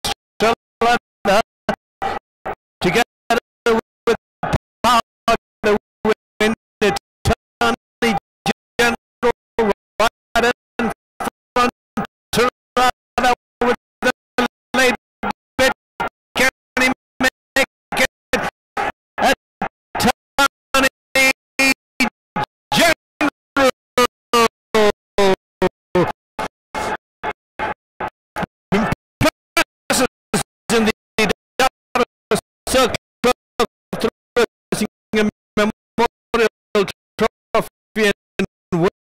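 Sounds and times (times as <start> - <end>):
race caller's voice: 0.0 - 19.4, 20.0 - 27.0, 28.7 - 39.0.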